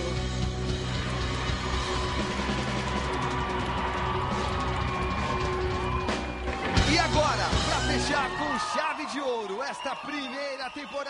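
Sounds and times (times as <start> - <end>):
garage rock band playing: 0.0 - 8.5.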